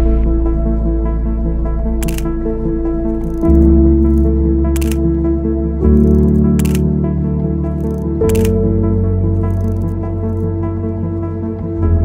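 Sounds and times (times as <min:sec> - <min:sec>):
background music with held notes: 0:00.0 - 0:12.0
camera shutter click: 0:02.0 - 0:02.4, 0:04.1 - 0:05.0, 0:06.0 - 0:06.9, 0:07.8 - 0:08.6, 0:09.4 - 0:10.4.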